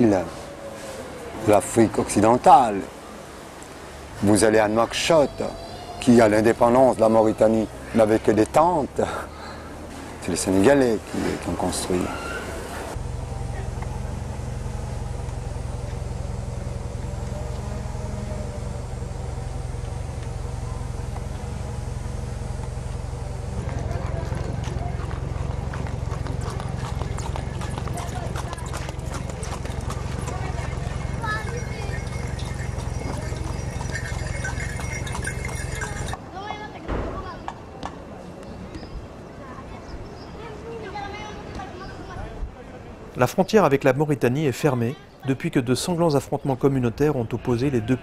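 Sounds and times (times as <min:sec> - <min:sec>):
low street rumble: 0:00.0 - 0:48.0
voices: 0:00.0 - 0:48.0
horse-drawn cart clattering: 0:13.3 - 0:36.6.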